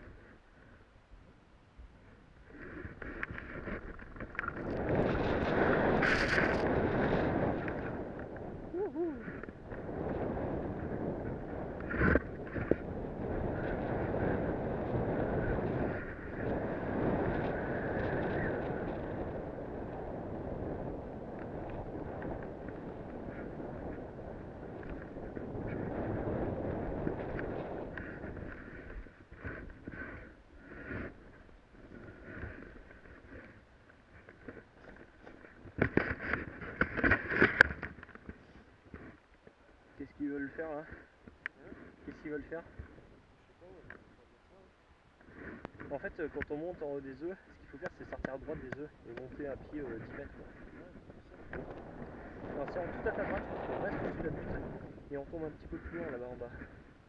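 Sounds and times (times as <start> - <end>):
wind buffeting microphone: 2.4 - 57.0
crunches and knocks in snow: 2.9 - 8.1.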